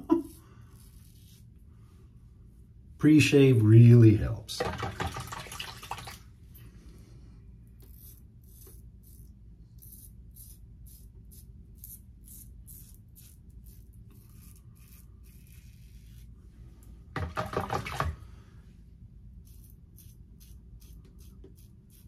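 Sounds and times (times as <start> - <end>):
razor scraping stubble: 0.0 - 1.6, 7.8 - 16.4, 19.3 - 22.0.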